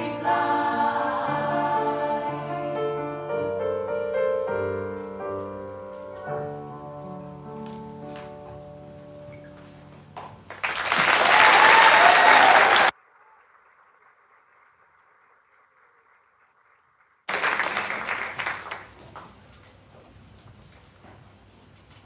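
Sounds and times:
choir and piano song: 0.0 - 9.4
audience applause: 10.5 - 19.4.

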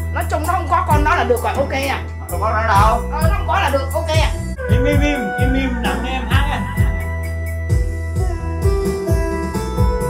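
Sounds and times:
karaoke instrumental backing track: 0.0 - 10.0.

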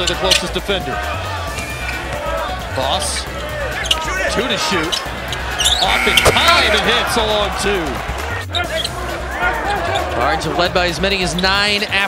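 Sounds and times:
crowd voices: 0.0 - 11.0
music playing: 0.0 - 12.0.

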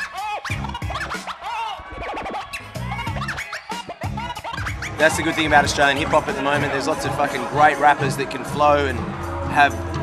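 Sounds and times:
turntable scratching: 0.0 - 7.6.

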